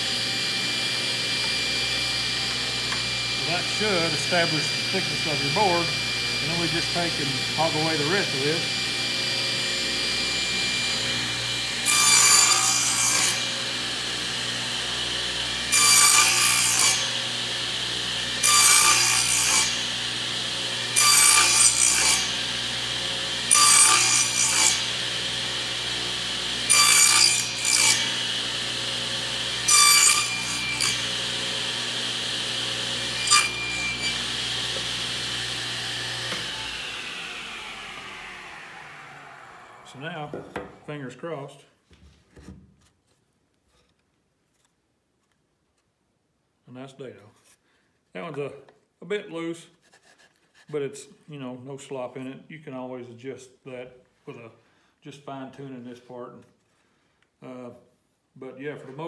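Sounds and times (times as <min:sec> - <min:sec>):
saw motor spinning down: 0:00.0 - 0:11.8, 0:27.4 - 0:40.4
table saw cutting board: 0:00.0 - 0:41.0.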